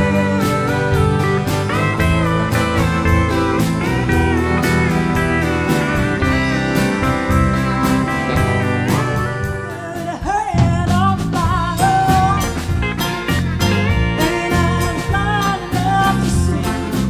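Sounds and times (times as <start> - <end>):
pedal steel guitar sliding notes: 0.0 - 10.1
electric bass: 0.0 - 17.0
steady drum beat: 0.0 - 17.0.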